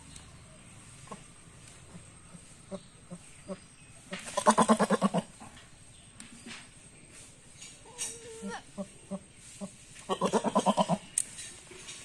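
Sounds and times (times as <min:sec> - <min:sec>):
goat bleating: 0:04.4 - 0:05.3, 0:10.0 - 0:11.0.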